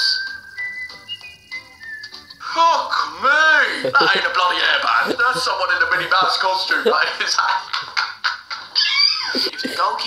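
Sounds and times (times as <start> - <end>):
high whistle-like tones: 0.0 - 3.2.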